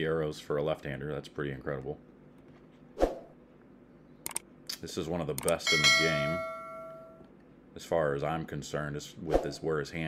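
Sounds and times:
computer mouse clicks: 4.2s - 4.5s, 5.4s - 5.6s.

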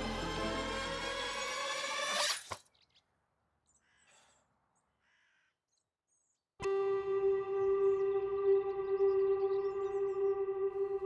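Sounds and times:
orchestral score music: 0.0s - 1.7s, 6.6s - 11.0s
crow cawing faintly: 3.7s - 5.6s.

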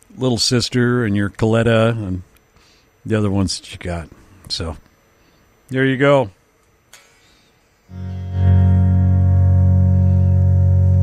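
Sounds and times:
electric guitar chord ringing: 7.9s - 11.0s.

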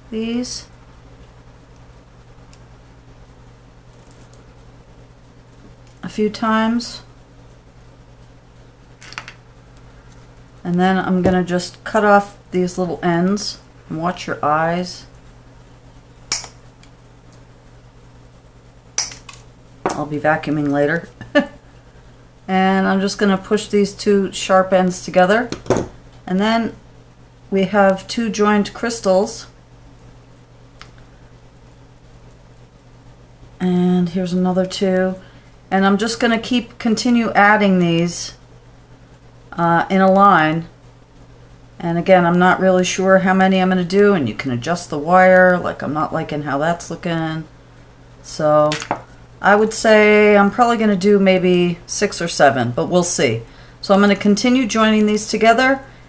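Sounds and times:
steady low hum: 0.0s - 56.0s
pliers twisting wire: 16.3s - 16.6s.

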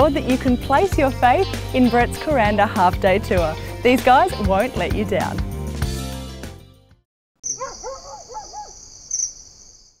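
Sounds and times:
music: 0.0s - 7.0s
short bird calls: 7.4s - 9.7s
high insect drone: 7.4s - 10.0s.

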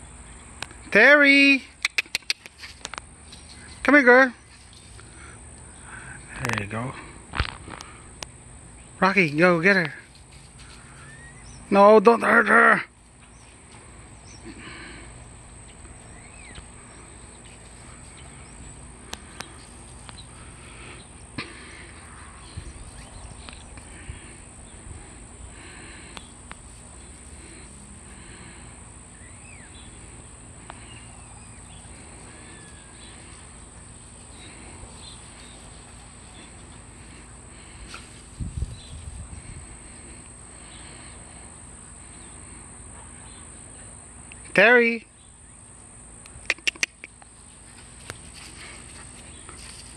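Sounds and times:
sharp clicks: 1.8s - 3.0s, 46.2s - 47.3s
bird chirps: 11.0s - 11.7s, 16.0s - 17.5s, 29.1s - 33.2s
high-pitched insect drone: 16.0s - 45.8s.

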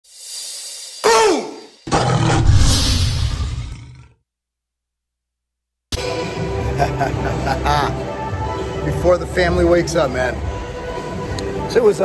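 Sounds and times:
rising whoosh: 2.3s - 3.9s.

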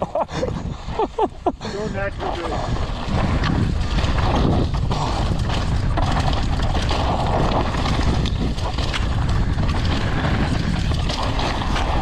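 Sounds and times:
tyre noise on loose dirt: 0.0s - 12.0s
wind rush on microphone: 0.0s - 12.0s
bike knocking and clattering: 2.2s - 12.0s.

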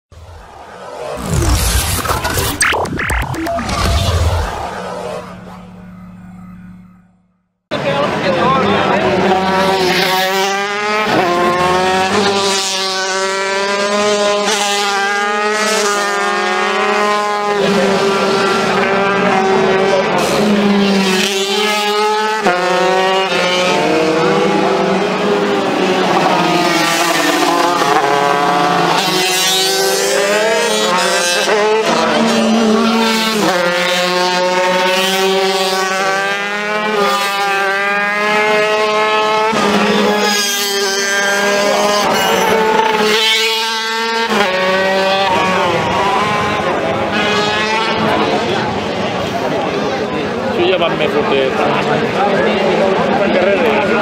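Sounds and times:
motorcycle engine revving: 8.9s - 48.7s.

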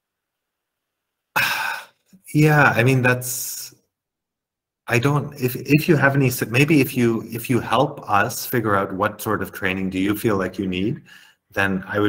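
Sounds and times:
man sighing: 1.4s - 1.9s.

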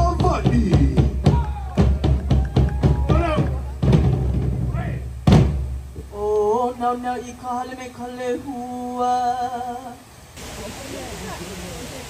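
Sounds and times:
music with bass and drums: 0.0s - 6.1s.

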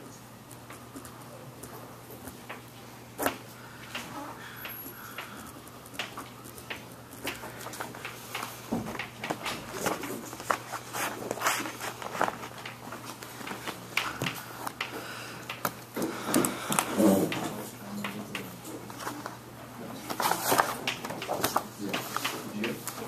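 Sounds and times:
steady low hum: 0.0s - 23.0s
clicks knocks and rustles: 2.2s - 19.3s.

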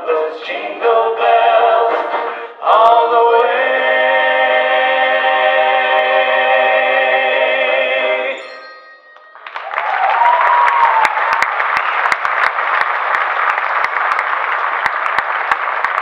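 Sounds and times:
vocal group singing in harmony: 0.0s - 8.6s.

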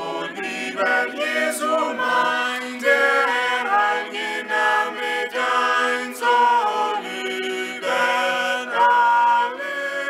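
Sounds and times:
group singing a hymn a cappella: 0.0s - 10.0s.

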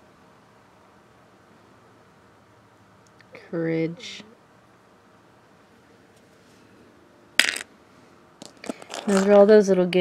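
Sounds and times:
plastic pieces clattering: 8.4s - 9.4s.

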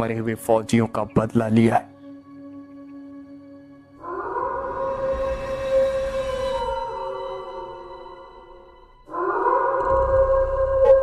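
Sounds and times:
wolf howl: 4.0s - 11.0s.

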